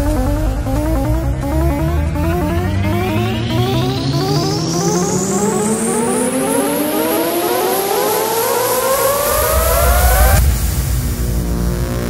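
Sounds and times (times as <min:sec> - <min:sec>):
deep bass swell: 0:00.0 - 0:07.2
rising noise sweep: 0:00.0 - 0:12.0
rising synthesizer tones: 0:00.0 - 0:12.0.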